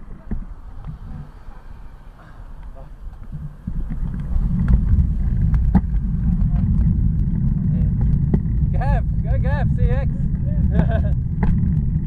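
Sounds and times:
wind and road rumble: 0:00.0 - 0:12.0.

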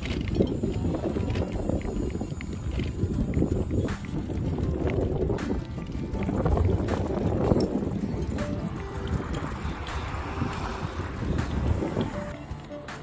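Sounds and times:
background music: 0:00.0 - 0:13.0
steady low rumble: 0:00.0 - 0:13.0
wind buffeting microphone: 0:00.0 - 0:13.0.

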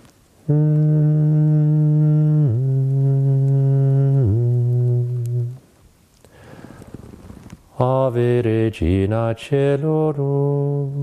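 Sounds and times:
man humming low note: 0:00.4 - 0:05.6.

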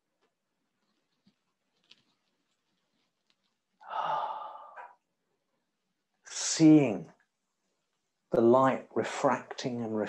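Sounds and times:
person sighing: 0:03.8 - 0:04.9.

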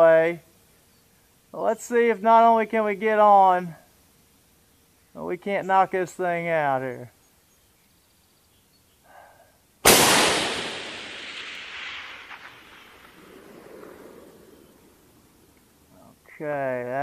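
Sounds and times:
rifle shot with rolling echo: 0:09.8 - 0:15.2.

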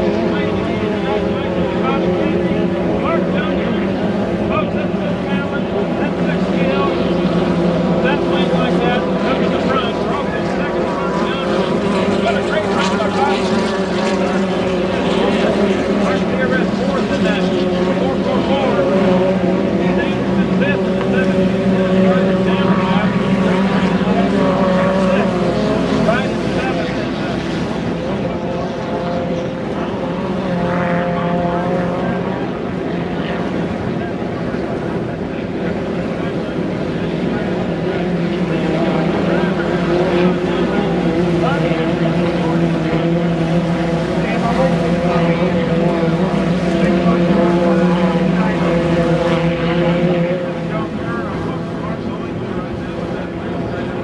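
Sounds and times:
racing boat engines droning: 0:00.0 - 0:54.0.

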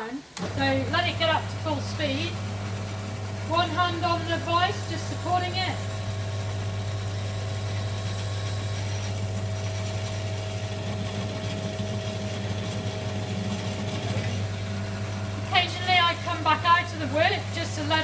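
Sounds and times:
drill motor running: 0:00.4 - 0:18.0
drill bit cutting wood: 0:03.5 - 0:15.5.

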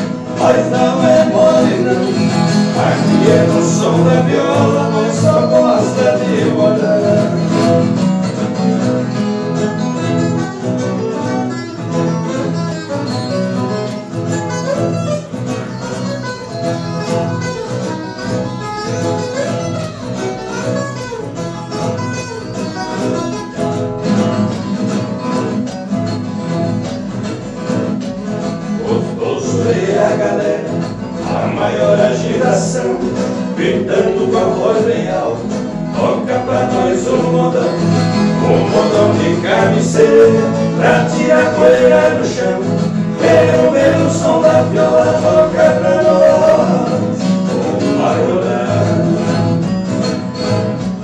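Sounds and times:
acoustic guitar accompaniment: 0:00.0 - 0:51.0
ten-string guitar picking melody: 0:00.0 - 0:51.0.

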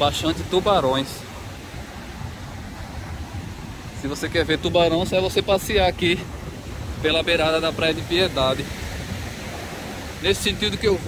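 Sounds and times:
ocean waves breaking on beach: 0:00.0 - 0:11.0
wind buffeting microphone: 0:00.0 - 0:11.0.

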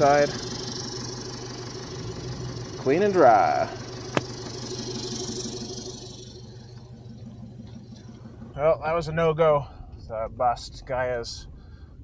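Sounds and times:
pickup engine idling: 0:00.0 - 0:12.0.

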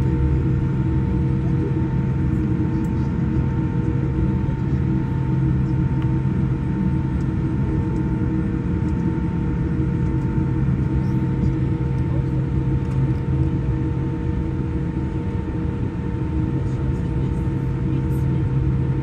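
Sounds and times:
jet engine cabin hum: 0:00.0 - 0:19.0.

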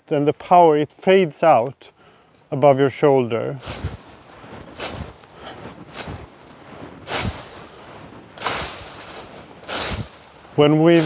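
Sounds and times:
pruning hook swishing through shoots: 0:03.6 - 0:04.1, 0:04.8 - 0:06.4, 0:07.0 - 0:07.8, 0:08.4 - 0:10.4.

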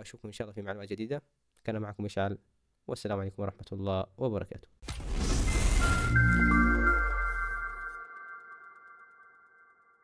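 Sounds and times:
high bell-like chimes: 0:05.5 - 0:10.0.

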